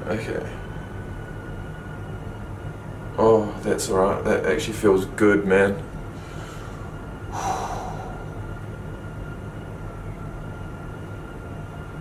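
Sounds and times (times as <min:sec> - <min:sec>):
faint thin whine: 0:00.0 - 0:12.0
low room hum: 0:00.0 - 0:12.0
man's short breath: 0:06.2 - 0:08.4.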